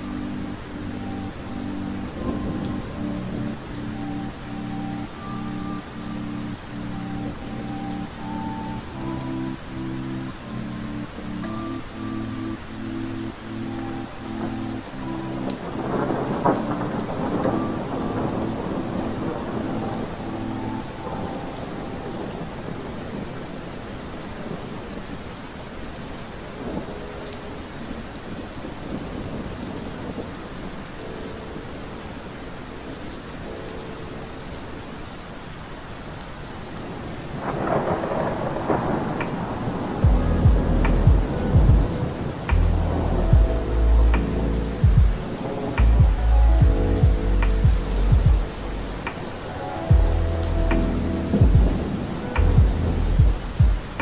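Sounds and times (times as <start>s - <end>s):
lo-fi hip hop beat: 0.0s - 22.0s, 37.8s - 54.0s
soft keyboard chords: 0.0s - 25.4s, 26.0s - 54.0s
steady rain: 0.0s - 54.0s
thunder rolling: 36.9s - 54.0s.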